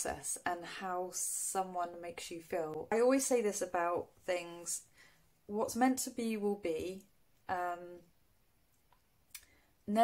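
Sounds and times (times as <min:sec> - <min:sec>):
woman speaking: 0:00.0 - 0:04.9, 0:05.5 - 0:08.2.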